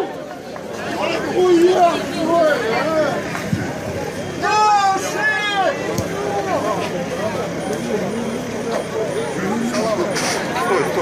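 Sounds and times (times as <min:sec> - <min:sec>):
overlapping voices chatting: 0:00.0 - 0:11.0
steady background noise: 0:00.0 - 0:11.0.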